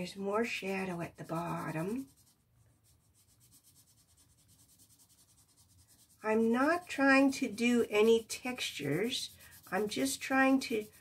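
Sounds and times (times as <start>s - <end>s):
pencil scratching on paper: 0.0s - 11.0s.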